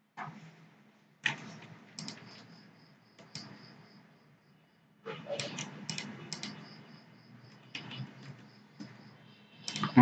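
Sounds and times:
keyboard and mouse clicking: 1.2 - 2.5, 3.2 - 3.6, 5.3 - 6.7, 7.5 - 9.0, 9.6 - 10.0.

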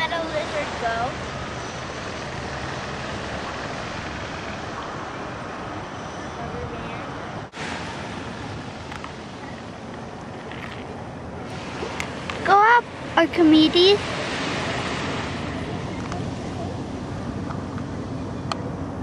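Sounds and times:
ocean surf: 0.0 - 19.0.

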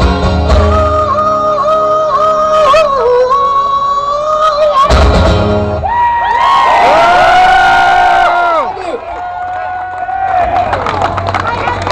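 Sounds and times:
acoustic guitar strummed: 0.0 - 4.0, 4.8 - 5.8.

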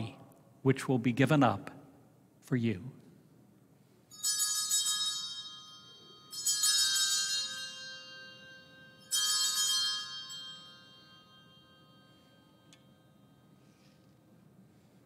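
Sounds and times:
altar bells ringing: 4.1 - 14.0.

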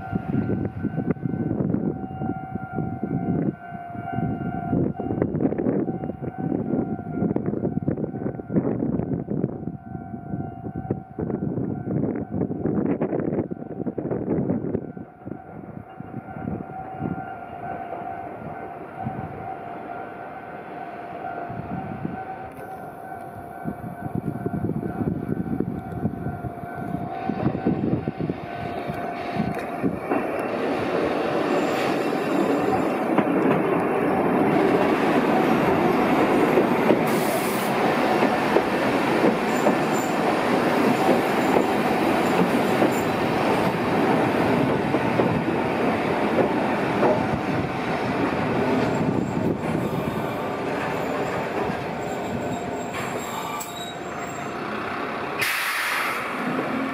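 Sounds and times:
electric train rolling past: 0.0 - 56.9
high squeal: 26.8 - 33.1, 39.4 - 41.6, 48.8 - 54.8
wheels clicking over rail joints: 29.5 - 47.3.

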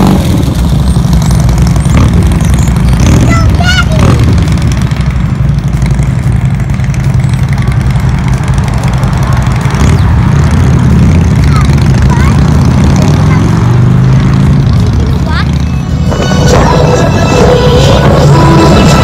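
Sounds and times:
motorcycle engines rumbling: 0.0 - 19.0
traffic noise: 0.0 - 19.0.

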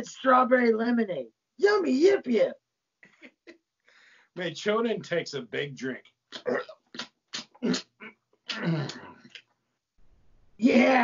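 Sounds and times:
man gulping and grunting: 6.3 - 9.5.

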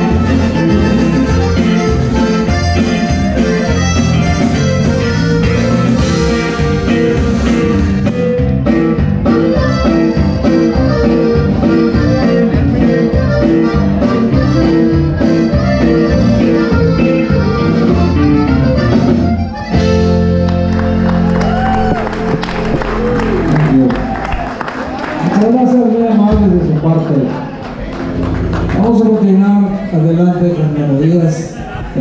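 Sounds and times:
drums: 0.0 - 23.8
accordions playing: 0.0 - 24.0
guitar: 0.0 - 25.3, 26.3 - 30.5.

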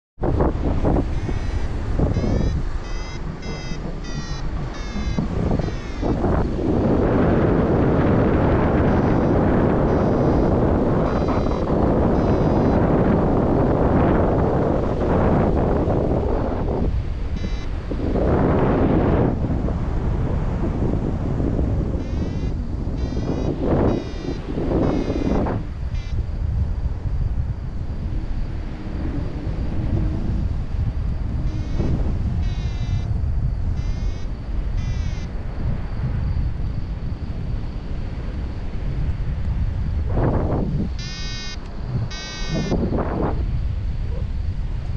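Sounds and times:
wind rushing over microphone: 0.2 - 44.9
variometer high beeps: 1.1 - 13.8, 16.7 - 17.8, 22.0 - 26.2, 31.5 - 33.1, 33.8 - 35.3, 40.8 - 43.3.

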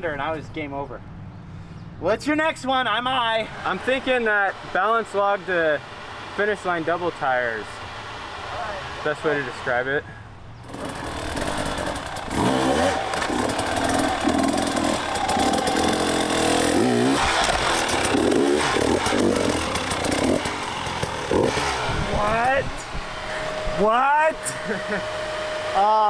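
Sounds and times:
dirt bike engine revving: 2.7 - 26.0.

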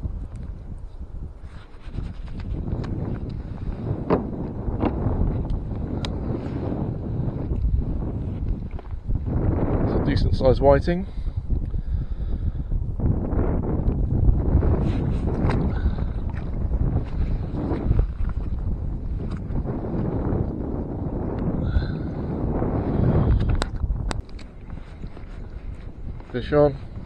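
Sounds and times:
wind buffeting microphone: 0.0 - 27.0
knocks and clicks of fishing gear: 4.0 - 6.2, 23.4 - 24.5.

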